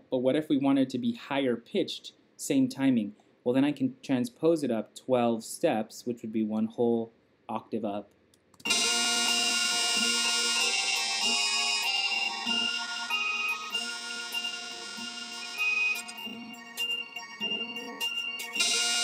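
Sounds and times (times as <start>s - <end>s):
high-pitched song loop: 8.6s - 19.0s.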